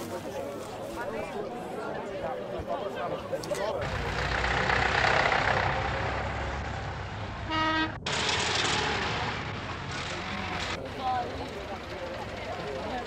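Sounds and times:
passing vehicles: 0:03.5 - 0:13.0
vehicle horn toot: 0:07.5 - 0:08.0.

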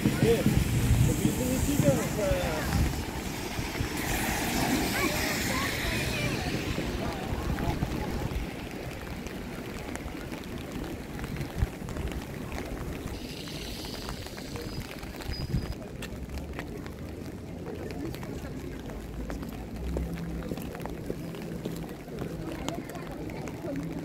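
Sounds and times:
passersby talking: 0:00.0 - 0:24.0
rain hiss on street: 0:00.0 - 0:24.0.

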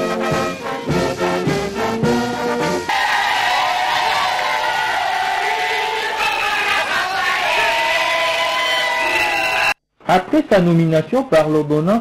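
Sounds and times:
crowd chanting held notes: 0:02.9 - 0:09.0.

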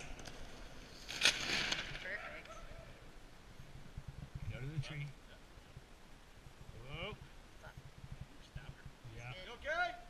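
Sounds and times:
parachute canopy snapping open: 0:01.0 - 0:02.2.

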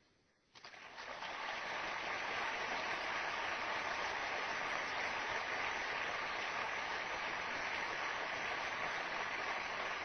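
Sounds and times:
audience applause: 0:00.7 - 0:10.0.

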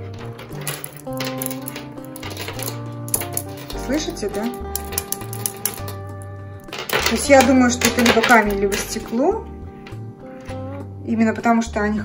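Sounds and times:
background music: 0:00.0 - 0:12.0
beads clicking together: 0:00.4 - 0:09.1.

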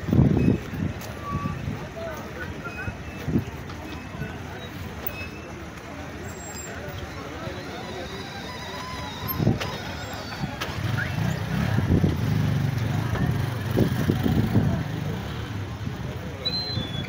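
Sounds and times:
crowd voices: 0:00.0 - 0:17.0
small motorcycle engines rumbling: 0:00.0 - 0:17.0.

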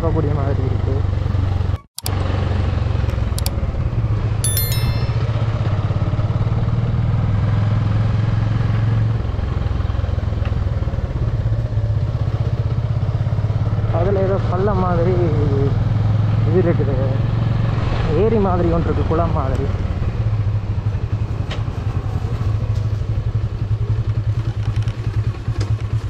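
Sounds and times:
high-pitched ringing chirp: 0:04.4 - 0:05.8
motorcycle engine running: 0:22.0 - 0:26.0.

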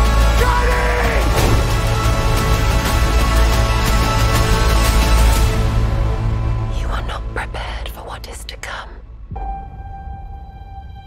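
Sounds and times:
breathy whispering: 0:06.7 - 0:09.0.

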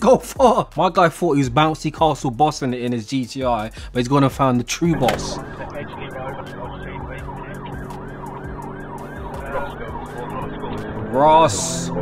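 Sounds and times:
car interior low hum: 0:04.9 - 0:10.8
police siren yelping: 0:04.9 - 0:12.0.

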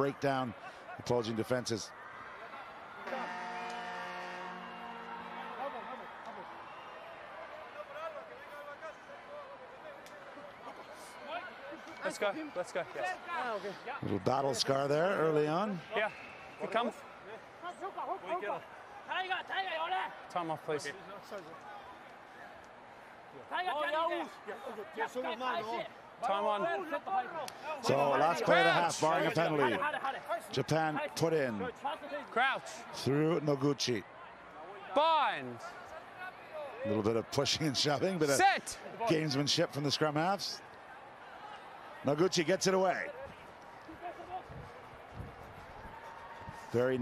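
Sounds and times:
crowd noise with faint voices: 0:00.0 - 0:47.0
low horn hooter: 0:03.0 - 0:06.2.

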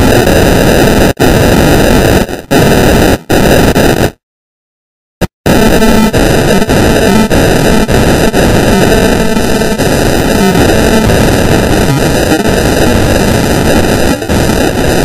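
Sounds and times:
distorted electronic pop music: 0:00.0 - 0:04.2, 0:05.2 - 0:15.0.

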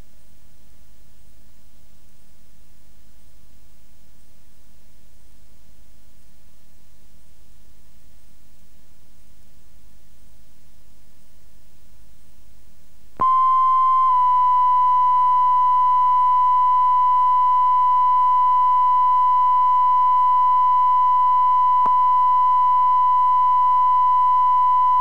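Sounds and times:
steady sine test tone: 0:00.0 - 0:25.0.

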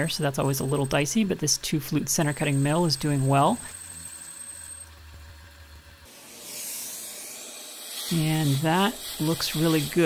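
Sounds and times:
milling machine humming: 0:00.0 - 0:10.0
shop vacuum hissing: 0:06.1 - 0:10.0.

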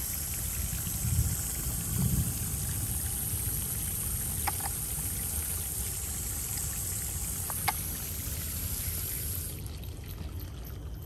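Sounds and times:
water trickling along trough: 0:00.0 - 0:11.0.

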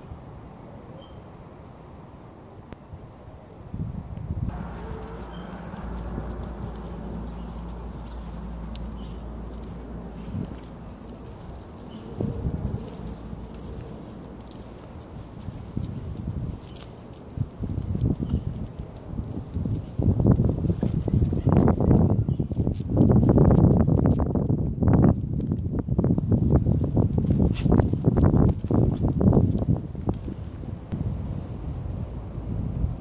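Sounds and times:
steady low hum: 0:04.3 - 0:21.2
uneven rumbling: 0:04.5 - 0:25.2
footsteps on pavement: 0:04.5 - 0:31.0.

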